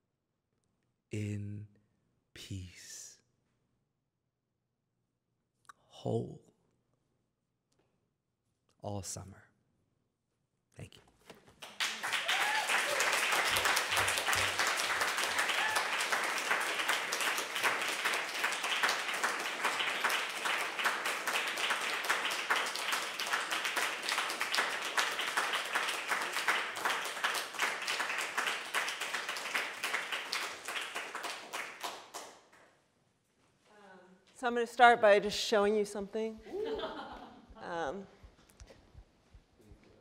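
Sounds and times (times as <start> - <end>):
audience applauding: 11.6 - 32.6.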